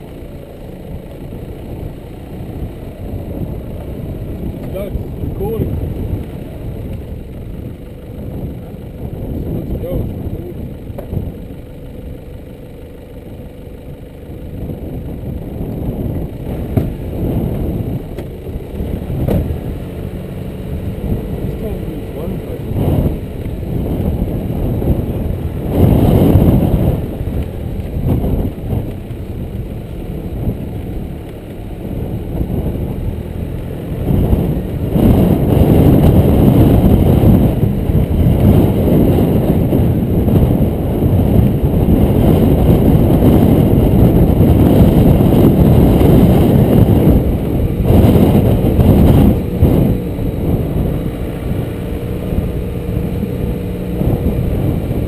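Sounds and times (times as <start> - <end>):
vehicle driving on dirt track: 0.0 - 55.0.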